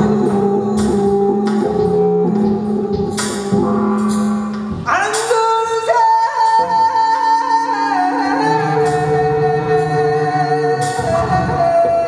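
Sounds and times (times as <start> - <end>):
experimental electronic jazz-rock music: 0.0 - 12.0.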